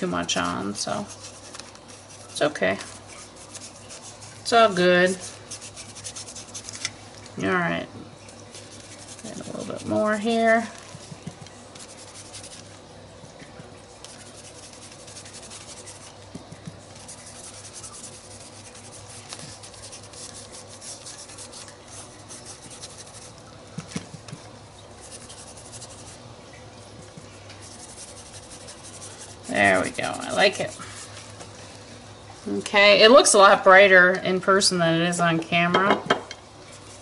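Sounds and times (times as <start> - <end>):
paintbrush rubbing on paper: 0.2 - 6.8, 8.5 - 12.8, 14.0 - 24.3, 25.0 - 26.2, 27.2 - 31.3.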